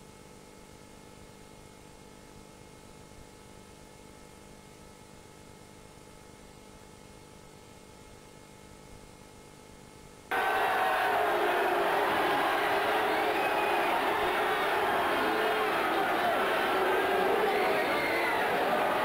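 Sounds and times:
crowd shouting and cheering: 10.3s - 19.0s
tape hiss and hum: 10.3s - 19.0s.

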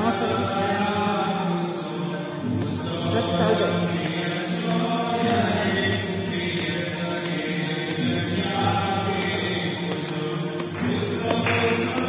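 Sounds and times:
devotional chanting: 0.0s - 12.0s.

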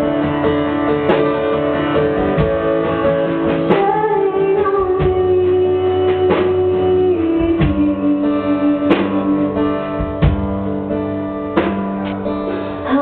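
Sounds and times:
acoustic guitar strumming: 0.0s - 13.0s
woman singing: 3.4s - 10.2s, 12.8s - 13.0s.

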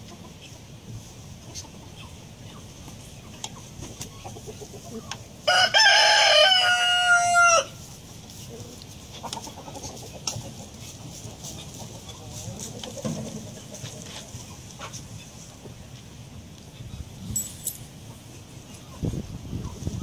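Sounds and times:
rooster crowing: 5.4s - 7.8s.

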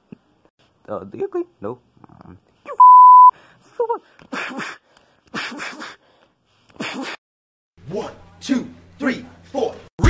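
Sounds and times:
censor bleep: 2.8s - 3.3s.

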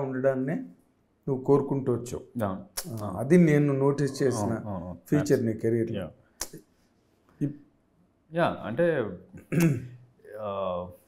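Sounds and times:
man's voice: 2.4s - 6.1s.

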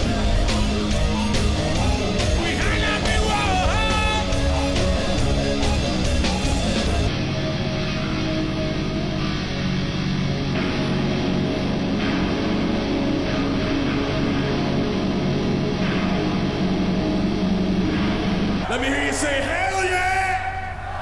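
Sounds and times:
heavy metal band playing live: 0.0s - 19.6s.

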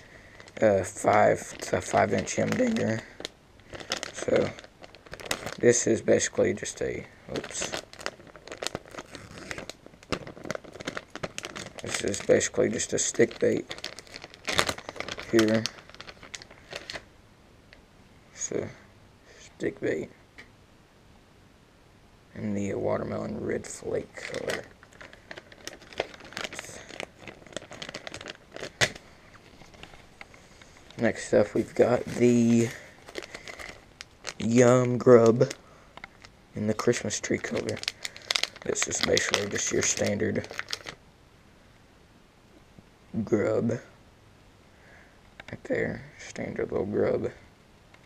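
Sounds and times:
plastic bag crinkling: 0.0s - 17.1s, 23.3s - 41.0s.

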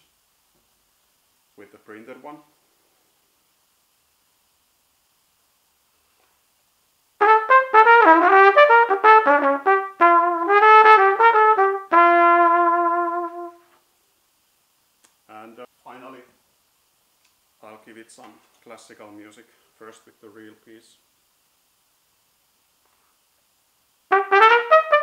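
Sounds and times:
trumpet jazz run: 7.2s - 13.7s, 24.1s - 25.0s.

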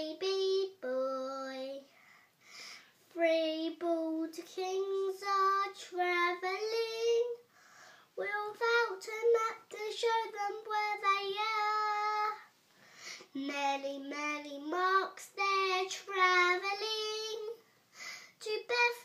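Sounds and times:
boy singing unaccompanied: 0.0s - 1.9s, 3.1s - 7.5s, 8.2s - 12.5s, 13.3s - 17.6s, 18.4s - 19.0s.

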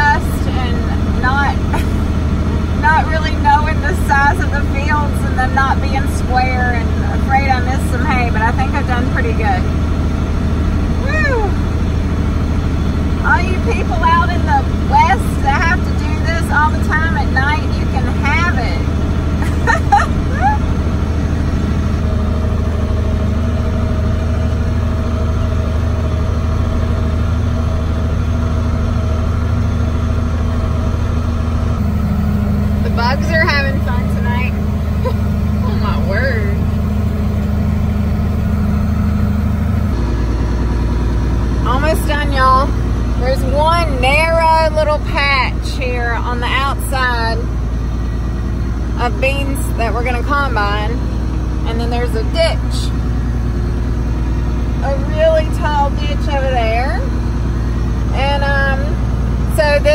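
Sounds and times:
tractor engine droning: 0.0s - 59.9s.

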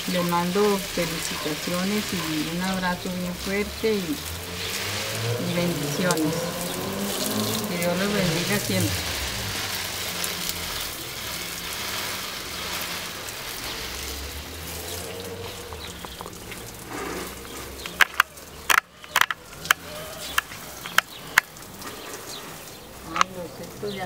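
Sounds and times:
hose spray hissing on plants: 0.0s - 24.0s.

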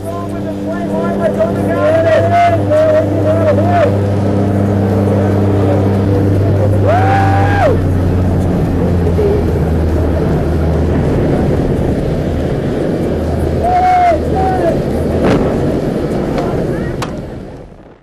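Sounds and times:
plane engines droning: 0.0s - 18.0s
rush of wind noise: 0.0s - 18.0s
person shouting: 6.7s - 8.0s, 13.6s - 14.8s.

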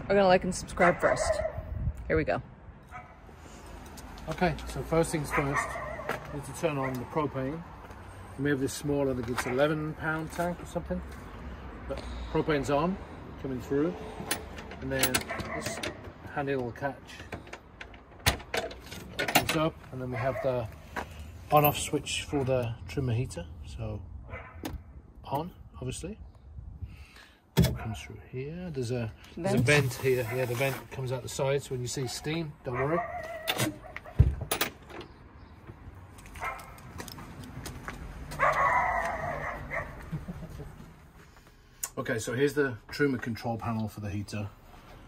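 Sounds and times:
dog barking: 0.8s - 1.6s, 2.9s - 3.2s, 5.3s - 6.2s, 20.2s - 20.7s, 24.3s - 24.6s, 32.0s - 34.2s, 36.4s - 36.8s, 38.4s - 40.0s.

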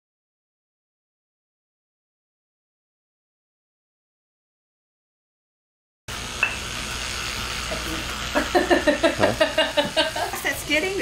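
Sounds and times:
steady sizzling hiss: 6.1s - 11.0s
woman laughing: 8.3s - 11.0s.

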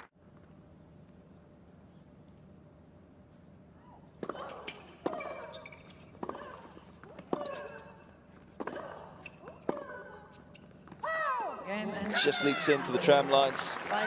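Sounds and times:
tennis ball struck with rackets: 4.2s - 5.6s, 6.2s - 10.2s
loud shout: 11.0s - 13.0s.

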